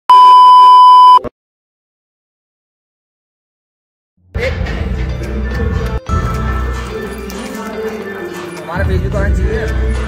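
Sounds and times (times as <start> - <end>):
test tone beep: 0.1 - 1.3.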